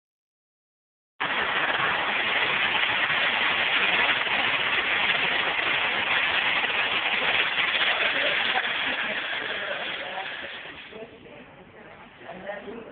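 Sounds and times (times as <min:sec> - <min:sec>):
spinning machine running: 0:01.2 - 0:11.0.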